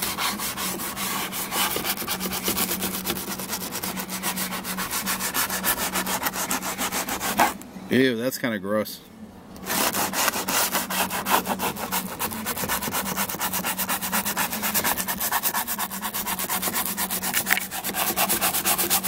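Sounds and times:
scrub brush scrubbing: 0.0s - 7.6s, 9.7s - 19.0s.

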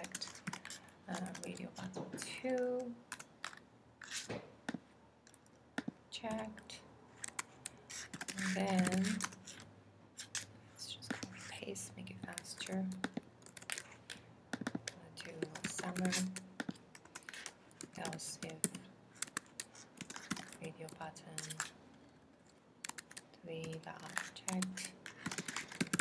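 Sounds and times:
computer keyboard typing: 0.0s - 3.6s, 7.2s - 9.6s, 12.1s - 21.7s, 22.8s - 26.0s.

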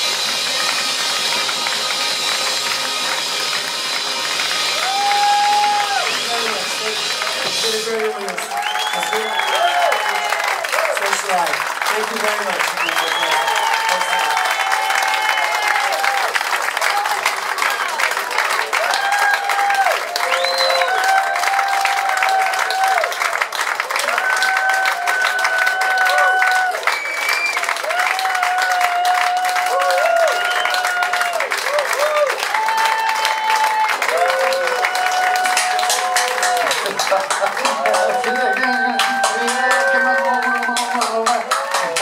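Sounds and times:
audience clapping and cheering: 0.0s - 42.0s.

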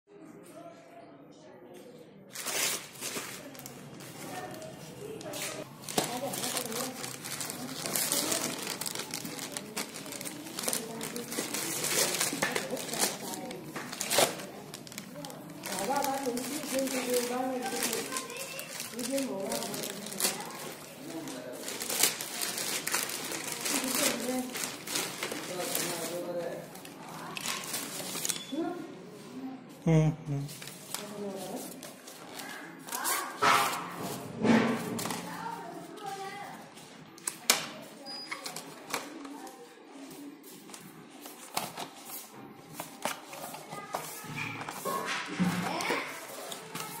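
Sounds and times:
plastic bag crinkling: 2.3s - 28.6s, 40.6s - 47.0s.

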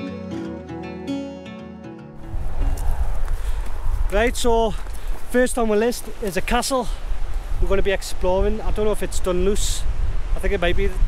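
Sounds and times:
guitar music: 0.0s - 2.8s
wind buffeting microphone: 2.2s - 11.0s.

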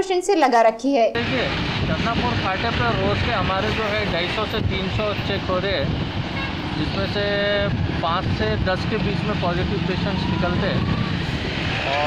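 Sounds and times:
people talking: 0.0s - 5.9s, 6.8s - 11.1s
road traffic noise: 1.2s - 12.0s.

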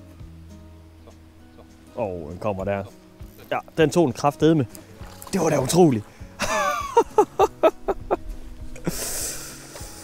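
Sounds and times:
background music: 0.0s - 10.0s
fish splashing in water: 4.8s - 5.8s.

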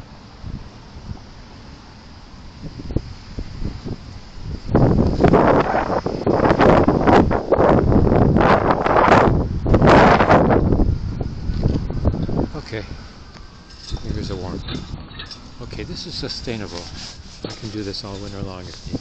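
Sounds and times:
wind buffeting microphone: 2.4s - 19.0s.

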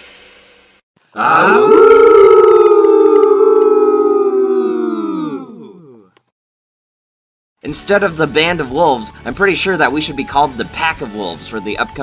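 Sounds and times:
wolves howling: 1.2s - 5.9s.

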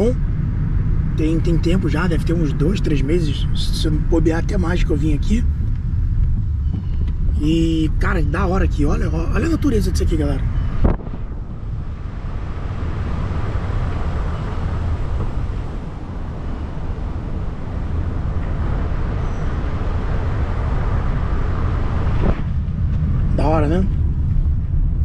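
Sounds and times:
tyre road and wind noise: 0.0s - 25.0s.

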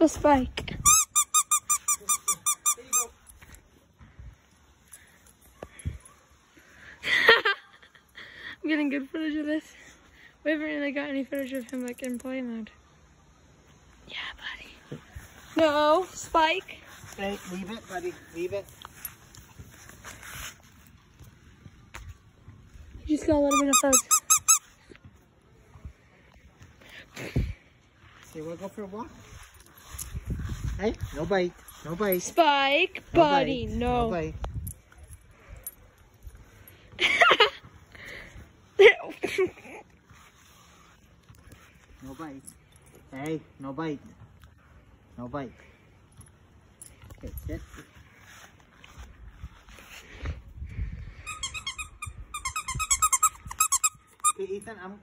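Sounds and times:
dog toy squeaking: 0.8s - 3.2s, 23.5s - 24.8s, 51.2s - 54.6s.

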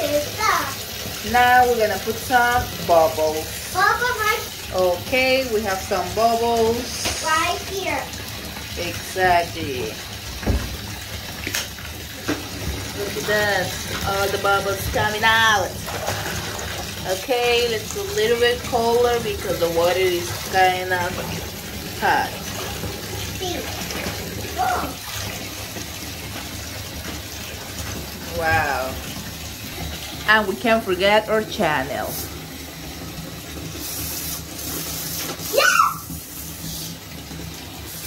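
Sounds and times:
tap water filling bathtub: 0.0s - 38.0s.

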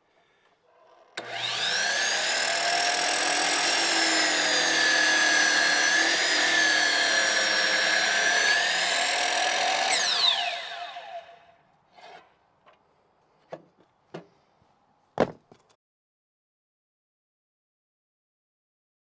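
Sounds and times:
saw blade winding down: 1.2s - 11.4s
mitre saw motor whining: 1.2s - 11.5s.

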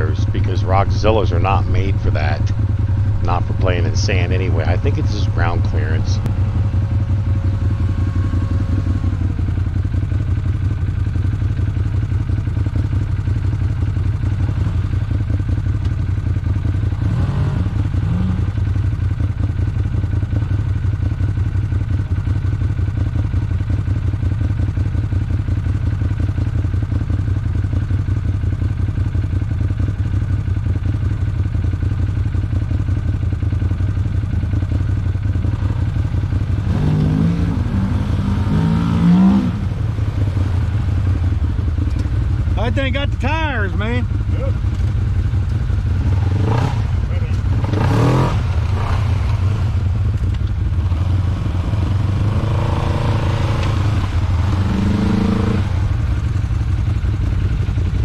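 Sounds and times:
second engine driving up: 0.0s - 19.0s, 32.5s - 58.0s
engine idling: 0.0s - 58.0s.

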